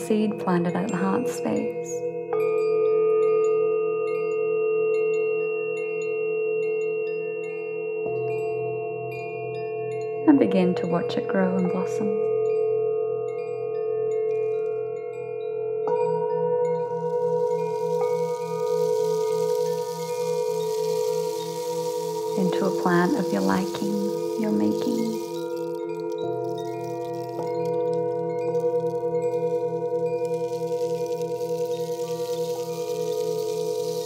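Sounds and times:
singing bowls ringing: 10.8s - 34.0s
bowl struck with wooden mallet: 17.1s - 34.0s.

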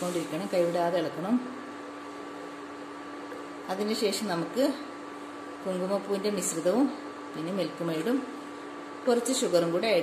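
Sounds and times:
person speaking: 0.0s - 1.6s
induction cooktop hum: 0.0s - 10.0s.

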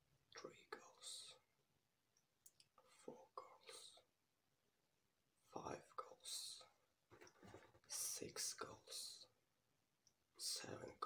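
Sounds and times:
man whispering: 0.3s - 1.6s, 2.7s - 4.2s, 5.4s - 6.9s, 7.9s - 9.4s, 10.3s - 11.0s.

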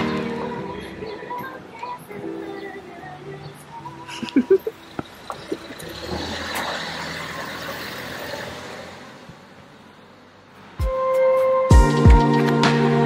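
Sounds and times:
vehicle passing by: 5.1s - 10.8s
music with low thump: 10.8s - 13.0s.

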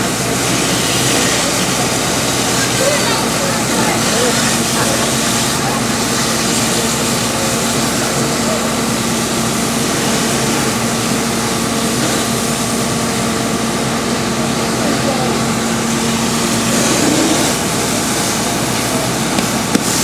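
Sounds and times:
engine-driven pump humming: 0.0s - 20.0s
water jets hissing from fire hoses: 0.0s - 20.0s.

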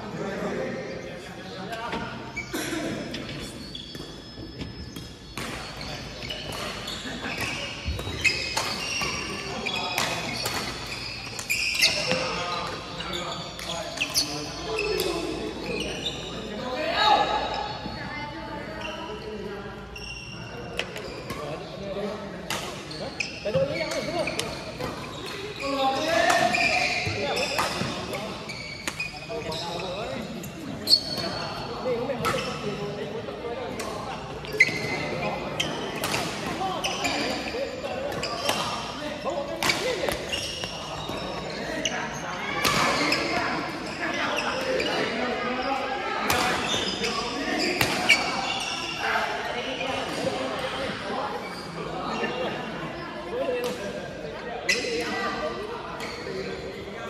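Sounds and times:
voices in a hall: 0.0s - 57.0s
rackets hitting shuttlecock: 3.9s - 12.8s, 22.4s - 29.1s, 35.9s - 37.4s, 38.1s - 38.9s.

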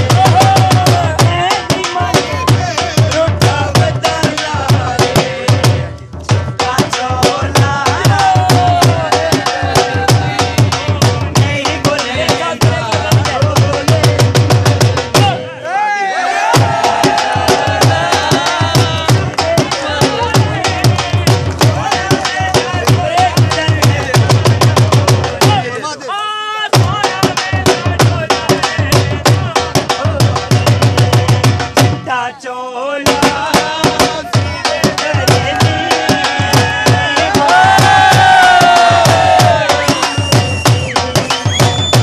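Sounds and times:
dhol drum fast rhythm: 0.0s - 15.6s, 16.4s - 26.0s, 26.7s - 32.3s, 33.0s - 42.0s.

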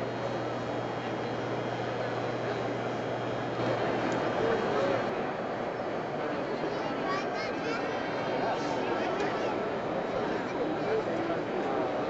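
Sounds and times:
indistinct crowd chatter: 0.0s - 12.0s.

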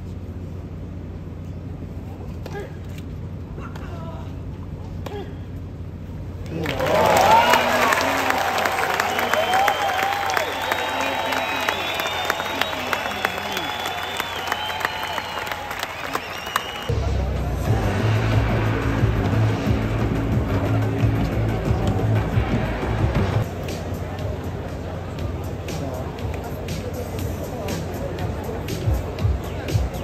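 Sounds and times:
crowd clapping: 6.4s - 16.9s
crowd cheering and shouting: 6.5s - 23.5s
background music with low beat: 16.9s - 30.0s.

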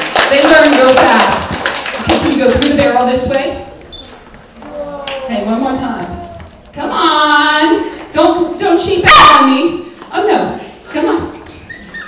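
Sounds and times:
woman's voice: 0.3s - 1.5s, 2.1s - 3.7s, 5.2s - 11.4s.

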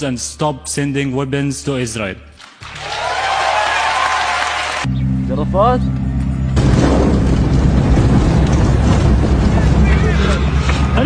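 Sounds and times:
car engine and road rumble: 4.9s - 11.0s
wind buffeting microphone: 6.6s - 11.0s.

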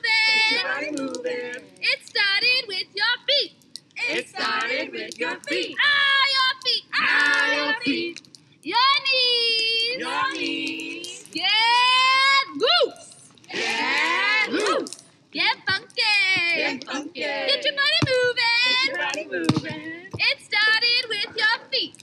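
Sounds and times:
group singing and shouting: 0.0s - 1.9s, 4.0s - 8.2s, 9.8s - 12.3s, 13.4s - 21.4s.

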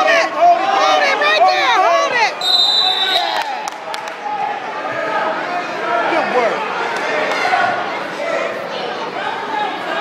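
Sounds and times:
spectators yelling: 0.0s - 10.0s
referee whistle blast: 2.4s - 3.5s.

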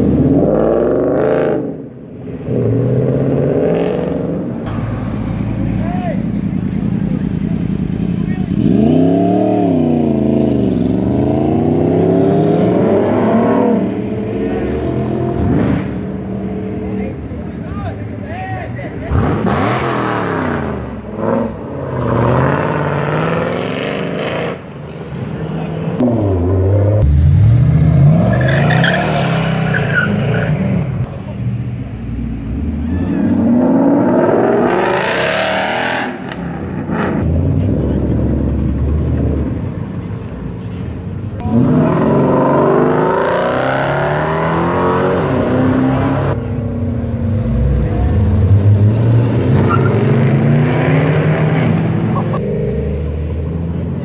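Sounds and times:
cars accelerating away: 0.0s - 18.2s, 18.8s - 40.5s, 41.4s - 54.0s.

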